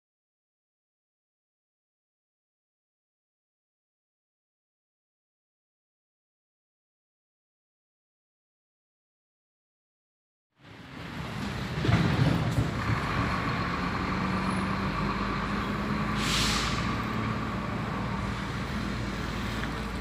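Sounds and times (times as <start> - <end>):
vehicle engine running: 12.2 - 16.2, 16.8 - 20.0
short hiss: 16.1 - 17.0.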